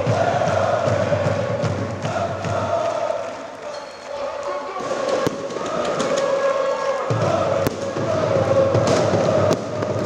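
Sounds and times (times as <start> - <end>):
stadium crowd chanting: 0.0 - 10.0
firework bang: 7.6 - 10.0.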